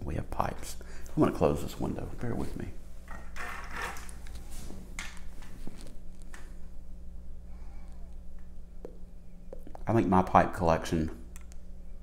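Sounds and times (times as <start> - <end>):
window blind slats rustling: 3.0 - 6.4.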